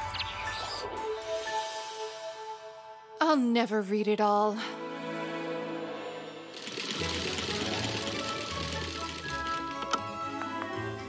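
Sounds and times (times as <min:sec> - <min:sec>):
background music: 0:00.0 - 0:11.0
sewing machine running fast: 0:06.5 - 0:10.7.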